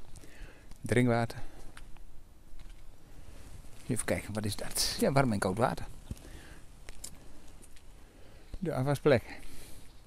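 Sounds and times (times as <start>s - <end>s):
quiet outdoor background noise: 0.0s - 10.0s
faint soft clicks: 6.0s - 7.9s.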